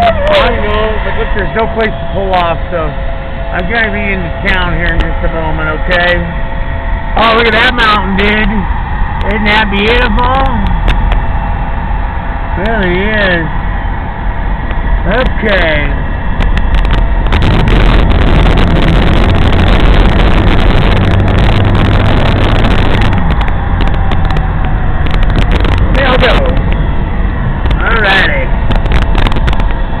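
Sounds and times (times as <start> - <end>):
road and wind noise in car: 0.0 - 30.0.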